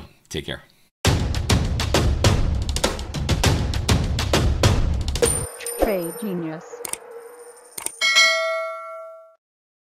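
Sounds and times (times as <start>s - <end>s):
bright bell ding: 5.2s - 9.4s.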